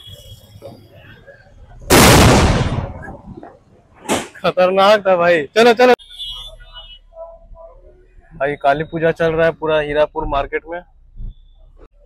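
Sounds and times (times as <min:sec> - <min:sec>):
firecracker bang: 0:01.9 - 0:03.4.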